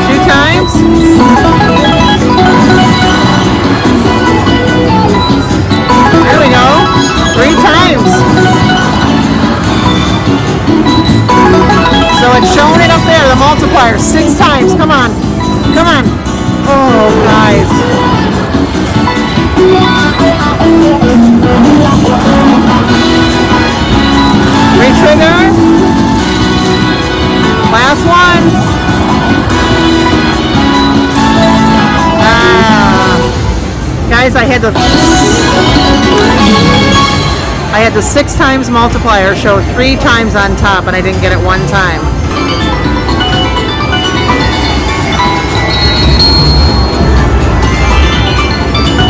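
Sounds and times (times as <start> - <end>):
electronic beeps: 0.0 - 23.2, 42.3 - 49.0
slot machine bonus music: 0.0 - 33.6, 34.8 - 37.7, 42.1 - 49.0
high chime: 0.2 - 18.2, 42.3 - 49.0.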